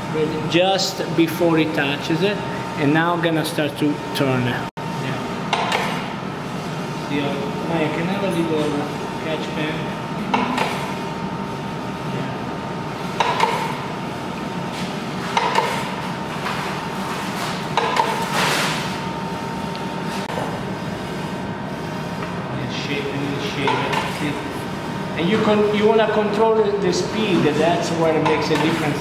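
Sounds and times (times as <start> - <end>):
meat slicer clatter and swish: 14.7 - 19.0.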